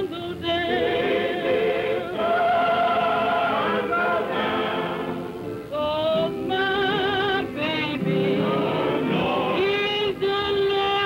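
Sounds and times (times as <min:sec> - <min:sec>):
choir singing: 0:00.0 - 0:10.9
blues singing with vibrato: 0:00.0 - 0:11.0.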